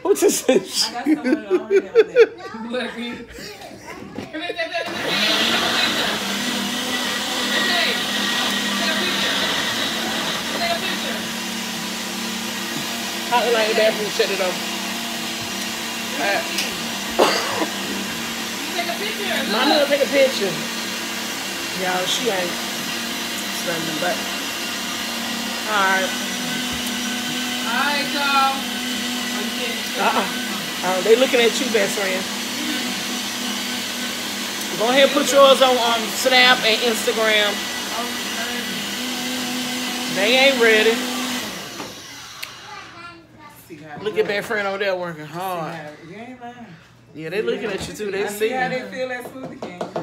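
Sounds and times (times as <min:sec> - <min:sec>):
small motor whirring: 0:25.6 - 0:43.0.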